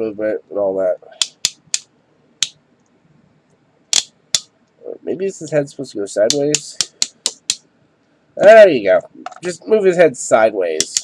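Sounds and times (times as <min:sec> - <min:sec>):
plastic action figure clicking: 0:01.2 - 0:01.8, 0:03.9 - 0:04.5, 0:10.8 - 0:11.0.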